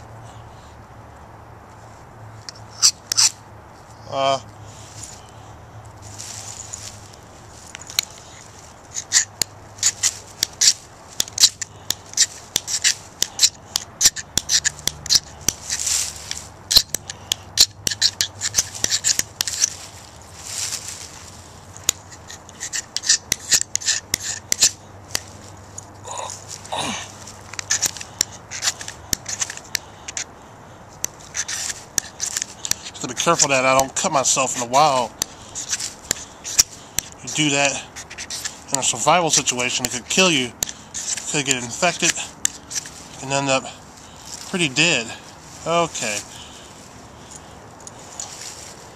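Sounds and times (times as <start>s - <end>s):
knife scraping fire-starter block: 2.5s - 3.4s, 7.7s - 19.8s, 21.8s - 25.4s, 26.3s - 30.3s, 31.0s - 45.1s.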